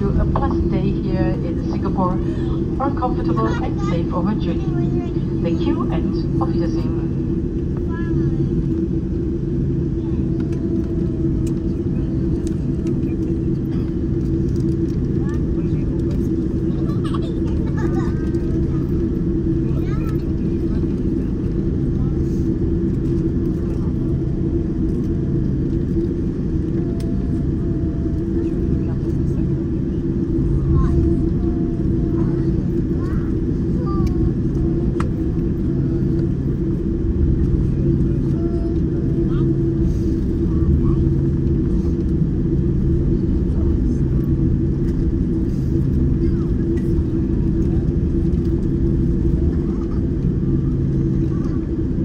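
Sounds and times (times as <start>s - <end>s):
airplane cabin drone: 0.0s - 52.0s
constant hum: 0.0s - 52.0s.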